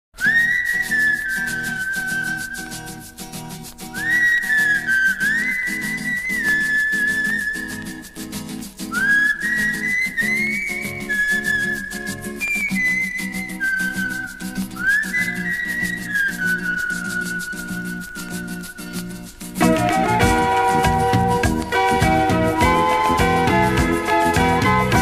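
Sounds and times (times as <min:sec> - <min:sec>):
whistled lead melody: 0:00.2 - 0:25.0
pop band playing: 0:19.3 - 0:25.0.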